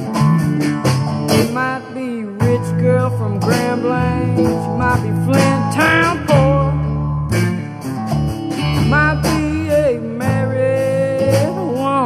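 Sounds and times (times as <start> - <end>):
bass: 0.0 - 12.0
guitar lead bending notes: 0.0 - 12.0
steady drum beat: 0.0 - 12.0.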